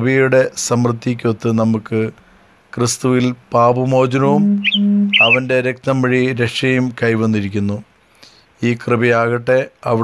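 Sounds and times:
man reading aloud: 0:00.0 - 0:02.2, 0:02.8 - 0:04.4, 0:05.2 - 0:07.8, 0:08.6 - 0:10.0
short high chirps: 0:04.3 - 0:05.5.

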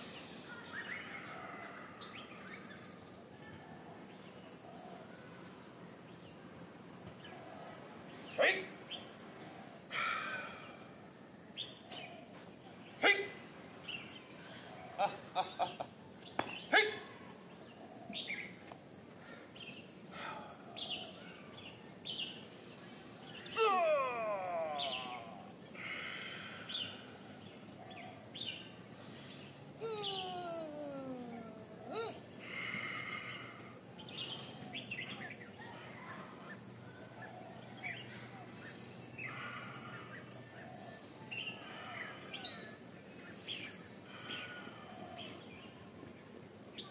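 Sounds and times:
outdoor background noise: 0:00.0 - 0:46.9
birds calling: 0:04.0 - 0:46.9.

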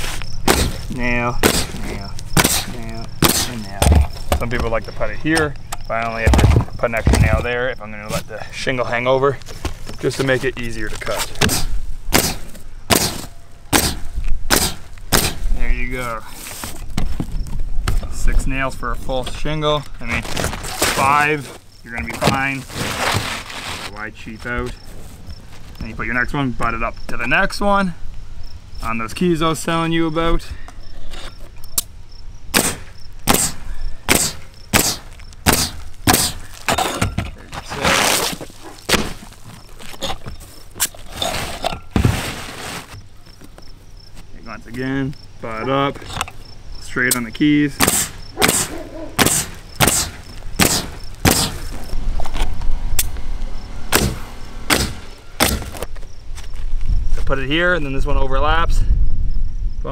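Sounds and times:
pneumatic nailer firing: 0:00.0 - 0:01.8, 0:02.4 - 0:04.0, 0:11.4 - 0:15.5, 0:32.5 - 0:37.2, 0:47.8 - 0:51.8, 0:53.9 - 0:55.8
shingle rustling: 0:00.0 - 0:28.2, 0:28.8 - 0:57.5.

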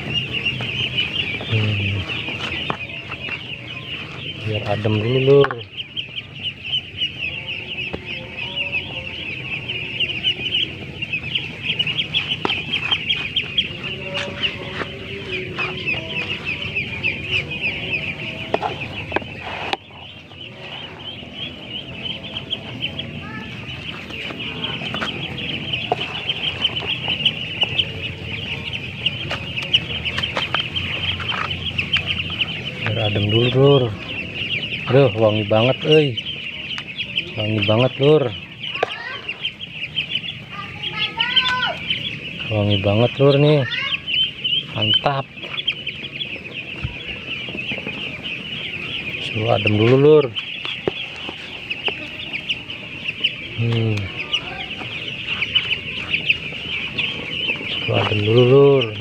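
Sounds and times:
ducklings peeping: 0:00.0 - 0:59.0.

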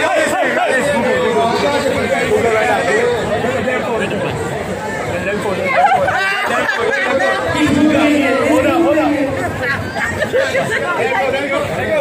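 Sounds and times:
crowd chattering: 0:00.0 - 0:12.0.

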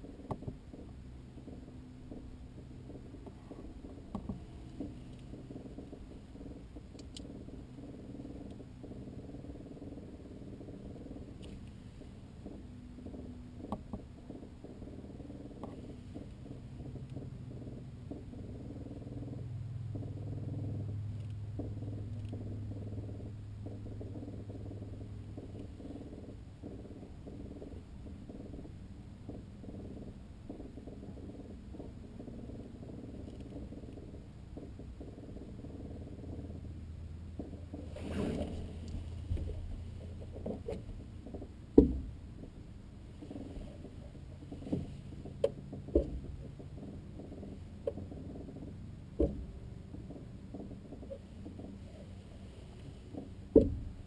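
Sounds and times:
faint clicks: 0:00.0 - 0:53.7
deeper drone: 0:00.0 - 0:54.0
low mechanical hum: 0:00.0 - 0:54.0.

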